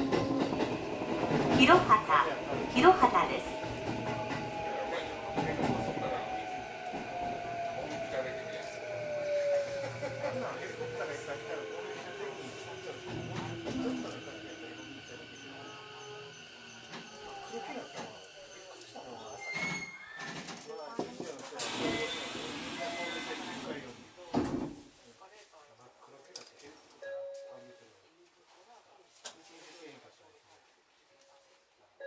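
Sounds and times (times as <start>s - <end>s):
indistinct voices: 0.0s - 21.0s.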